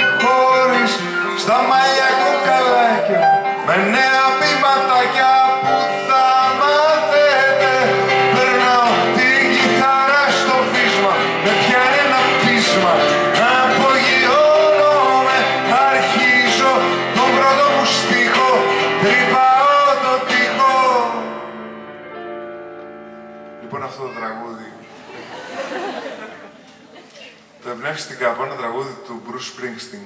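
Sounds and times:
man singing: 0.0 - 21.6
acoustic guitar: 0.0 - 27.6.

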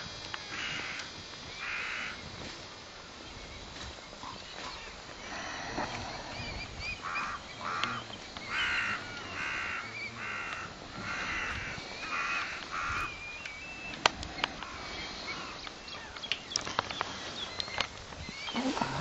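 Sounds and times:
bird harsh calls: 0.5 - 2.2, 3.5 - 19.0.

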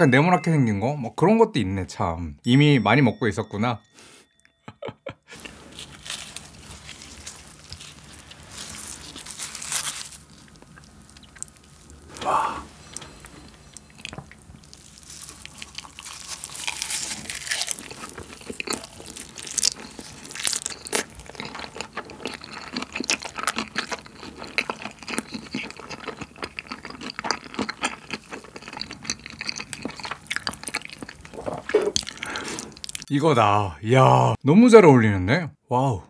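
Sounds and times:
close chewing with crackles: 5.3 - 33.1.

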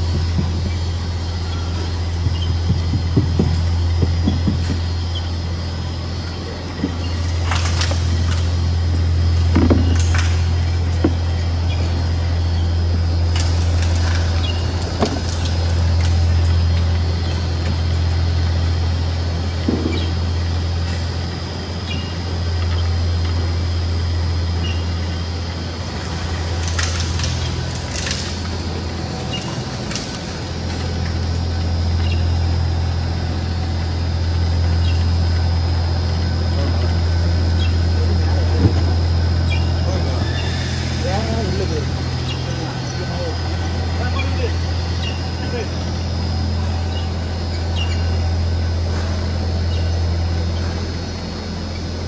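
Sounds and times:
low machine hum: 0.0 - 52.0
shredder droning: 0.0 - 52.0.

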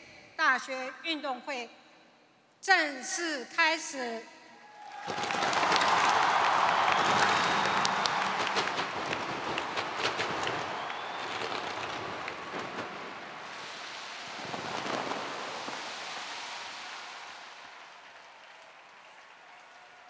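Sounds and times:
crowd applause: 4.8 - 20.0
fireworks crackling and popping: 4.9 - 20.0.

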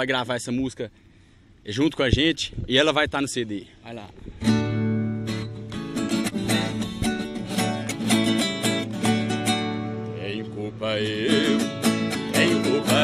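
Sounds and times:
viola and acoustic guitar: 4.2 - 13.0
bass notes: 4.3 - 13.0
person singing: 11.0 - 13.0.

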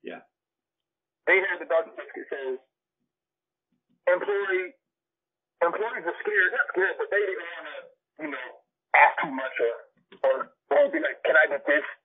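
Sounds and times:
men talking: 1.3 - 2.6, 4.1 - 4.7, 5.6 - 12.0.

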